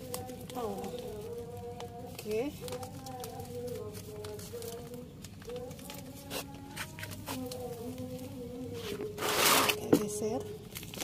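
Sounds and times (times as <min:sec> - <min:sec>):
faint voice singing long notes: 0:00.0 - 0:10.6
plastic bag rustling: 0:00.0 - 0:11.0.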